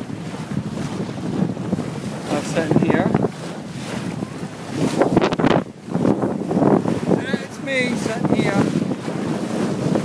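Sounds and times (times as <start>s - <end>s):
water washing past boat bow: 0.0s - 10.0s
wind blowing across microphone: 0.0s - 10.0s.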